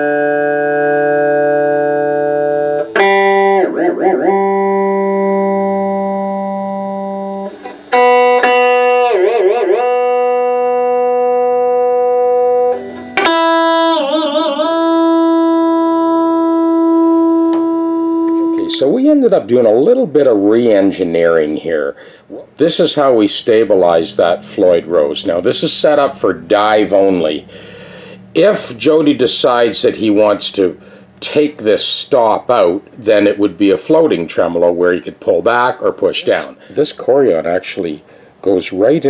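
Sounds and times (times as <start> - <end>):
guitar pitch wobbling from tremolo dives: 0.0 - 18.6
electric guitar struck and ringing: 0.0 - 18.9.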